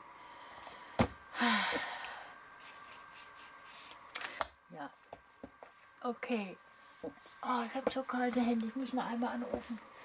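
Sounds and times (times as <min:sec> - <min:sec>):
paper rustling: 0:02.6 - 0:04.3.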